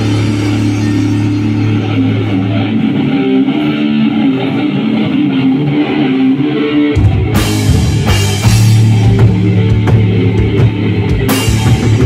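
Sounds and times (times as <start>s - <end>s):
electric guitar and bass chord: 0.0s - 12.0s.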